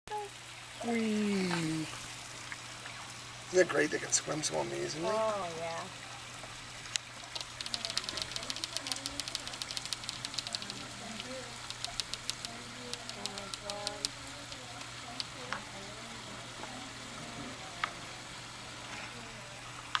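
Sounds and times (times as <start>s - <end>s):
crackling water bubbles: 5.2s - 20.0s
steady low hum: 6.7s - 20.0s
faint voices talking: 7.5s - 19.6s.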